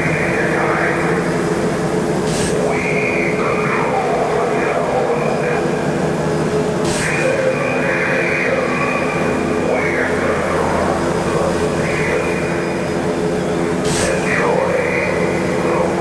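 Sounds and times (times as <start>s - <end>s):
synthesizer drone: 0.0s - 16.0s.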